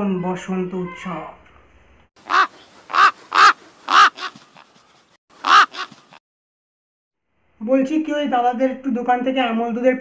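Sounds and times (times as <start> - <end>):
crow cawing: 2.2 - 4.4, 5.4 - 6.0.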